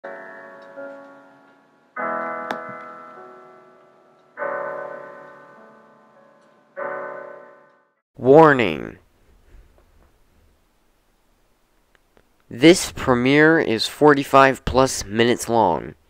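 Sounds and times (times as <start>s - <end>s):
piano chords ringing: 0.0s - 8.0s.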